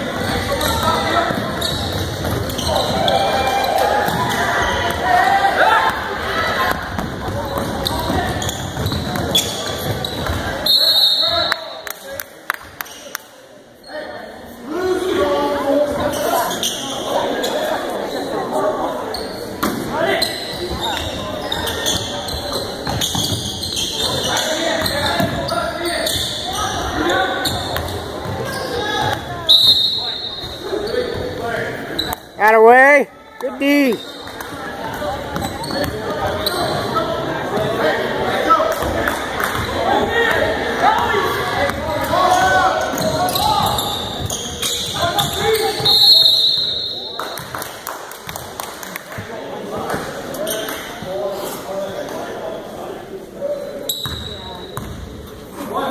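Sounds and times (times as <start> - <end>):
sneakers squeaking on hardwood: 0.0 - 5.0, 6.6 - 11.4, 15.9 - 18.3, 19.0 - 32.4, 33.8 - 37.7, 40.9 - 47.6, 53.8 - 55.3
voices talking and calling out: 0.0 - 47.6
basketball bouncing: 6.7 - 10.5, 54.8 - 55.0.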